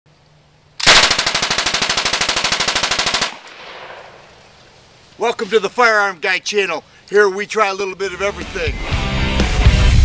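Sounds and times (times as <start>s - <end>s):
submachine gun burst: 0.8s - 4.2s
gunshot echo: 3.3s - 4.2s.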